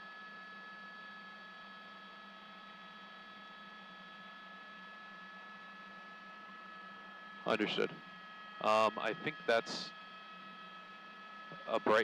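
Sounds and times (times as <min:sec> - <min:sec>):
constant high tones: 0:11.5 - 0:12.0.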